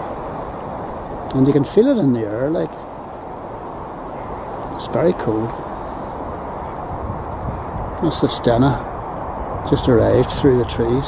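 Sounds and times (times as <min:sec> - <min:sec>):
distant traffic: 0:00.0 - 0:11.0
wind on microphone: 0:00.0 - 0:11.0.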